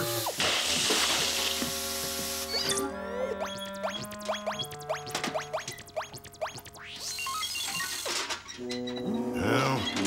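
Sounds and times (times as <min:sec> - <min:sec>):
background music: 0:00.0 - 0:07.0, 0:08.6 - 0:10.0.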